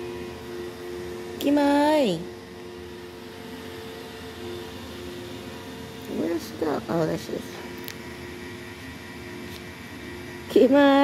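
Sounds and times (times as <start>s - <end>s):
faint steady whine: 0.0s - 11.0s
robot vacuum humming: 0.0s - 11.0s.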